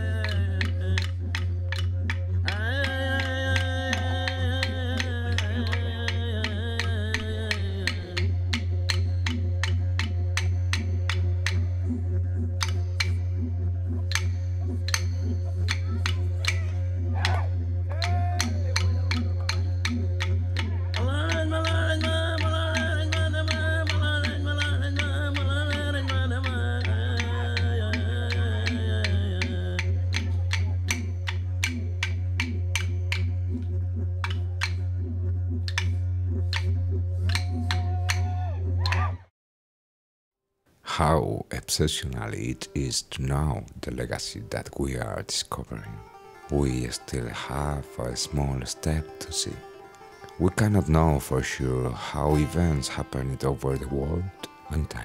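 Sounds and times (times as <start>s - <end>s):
man singing: 0.0s - 1.3s, 2.5s - 8.4s, 21.0s - 30.3s
clapsticks striking: 0.0s - 11.7s, 12.5s - 13.3s, 14.1s - 34.8s, 35.6s - 39.1s, 46.4s - 55.0s
didgeridoo drone: 0.0s - 39.3s, 42.0s - 55.0s.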